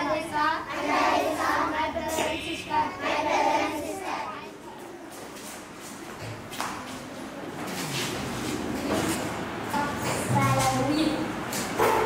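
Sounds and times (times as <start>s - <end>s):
child speaking: 9.7s - 11.4s.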